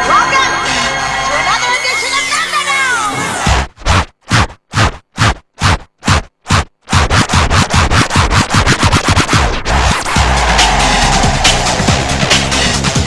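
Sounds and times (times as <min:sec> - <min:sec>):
breakbeat dance music: 0:00.0 - 0:13.0
fast drum roll: 0:03.5 - 0:13.0
sharp noisy hits: 0:06.9 - 0:12.8.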